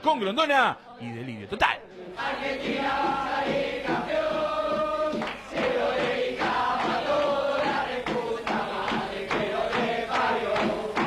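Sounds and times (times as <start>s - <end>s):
men chanting and singing: 1.0s - 11.0s.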